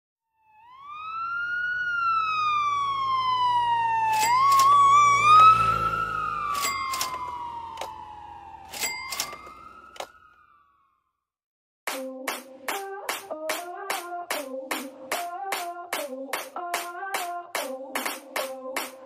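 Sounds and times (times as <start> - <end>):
siren wailing: 0.2 - 11.2
sharp clicks or knocks: 4.1 - 4.8.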